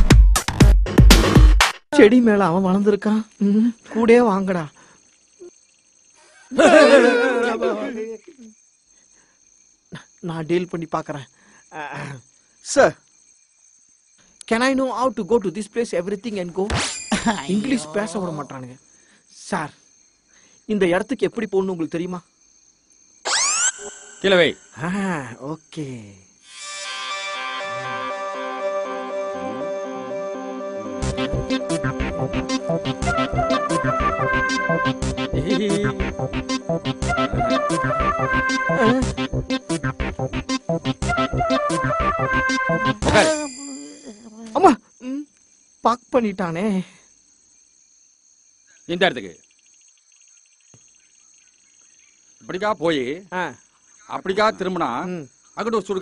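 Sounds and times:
crickets chirping in a fast trill: 0:02.0 - 0:28.1, 0:30.4 - 0:56.0
rising whistle sound effect: 0:23.2 - 0:24.8, 0:26.5 - 0:31.9.

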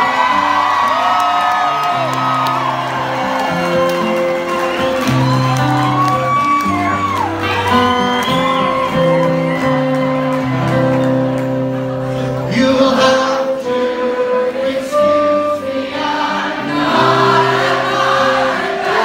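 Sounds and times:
audience whooping and shouting: 0:00.0 - 0:11.3
folk-rock band playing live: 0:00.0 - 0:19.0.

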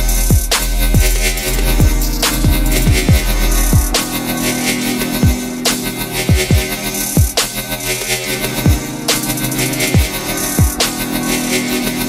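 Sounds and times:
held bass tone: 0:00.0 - 0:07.3.

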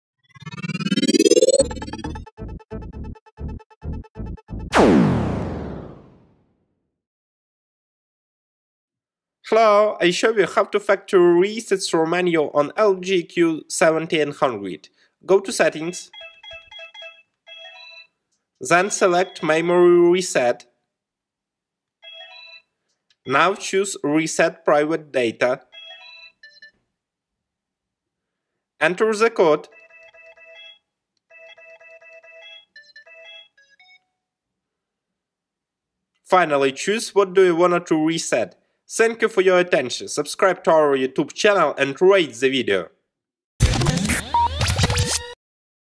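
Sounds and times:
rising pitch sweeps: 0:00.2 - 0:06.1
electronic logo sting: 0:00.2 - 0:06.2
phone keypad beeps: 0:16.1 - 0:18.1, 0:25.8 - 0:26.7, 0:29.7 - 0:34.1.

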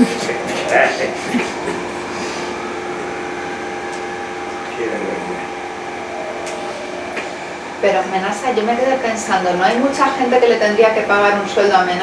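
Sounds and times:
faint fan hum: 0:00.0 - 0:12.0.

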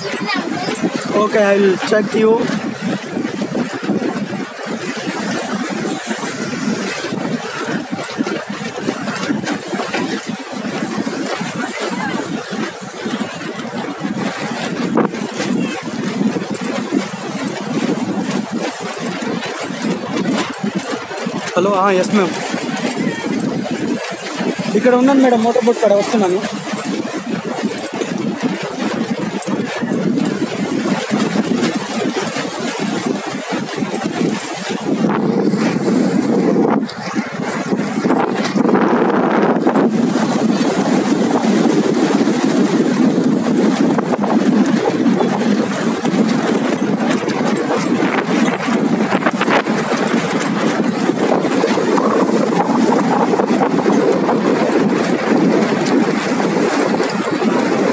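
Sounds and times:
motorboat engine running: 0:00.0 - 0:57.9
water noise: 0:00.0 - 0:57.9.

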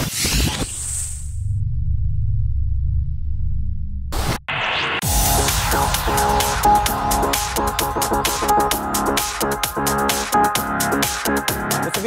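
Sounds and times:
deep bass drone: 0:01.0 - 0:11.8.

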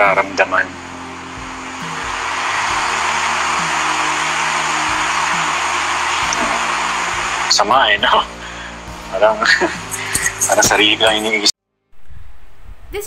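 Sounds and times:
low drone music: 0:00.0 - 0:11.5
loud even hiss: 0:00.0 - 0:12.8.

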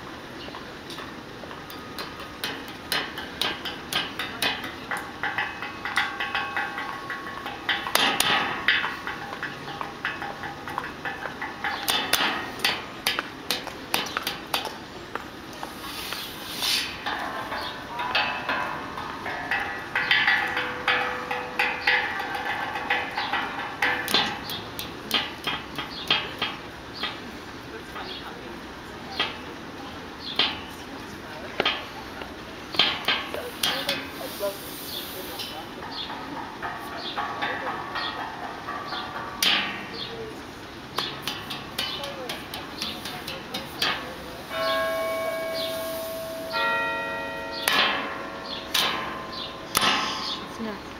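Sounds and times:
metallic percussion hits: 0:01.7 - 0:14.7, 0:16.8 - 0:27.3, 0:30.3 - 0:30.9, 0:32.7 - 0:50.9
ringing metallic bell tones: 0:44.5 - 0:50.9
low sustained note: 0:45.2 - 0:46.6.

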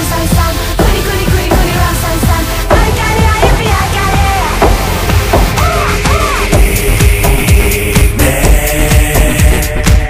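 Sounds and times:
house music: 0:00.0 - 0:10.0
steady kick drum: 0:00.0 - 0:10.0.

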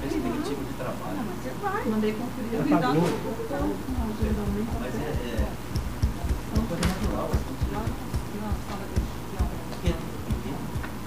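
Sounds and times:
faint voices talking: 0:00.0 - 0:11.0
low irregular thuds: 0:03.5 - 0:11.0.

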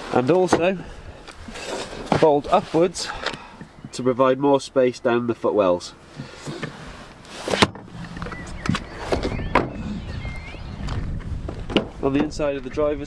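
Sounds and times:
low rumbling handling noise: 0:06.2 - 0:10.2.

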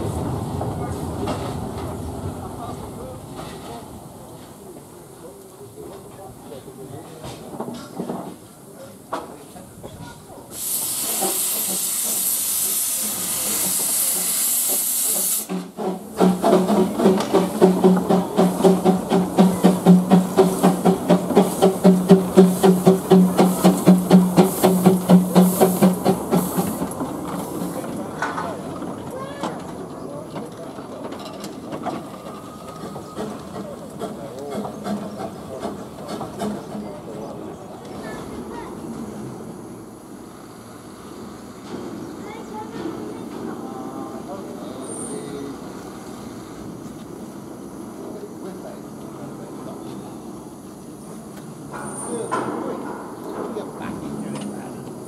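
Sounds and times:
locomotive rumbling: 0:00.0 - 0:55.0
steam hissing: 0:10.4 - 0:28.2
steam locomotive pulsing: 0:10.4 - 0:55.0.

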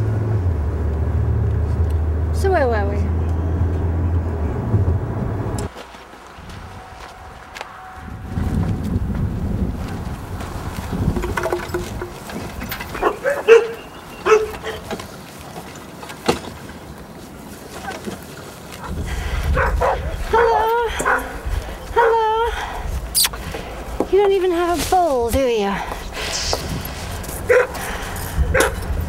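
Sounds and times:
low rumble: 0:06.4 - 0:12.3, 0:25.7 - 0:29.0
dog barking: 0:13.0 - 0:14.8, 0:19.5 - 0:21.4, 0:27.5 - 0:27.8, 0:28.5 - 0:28.8.

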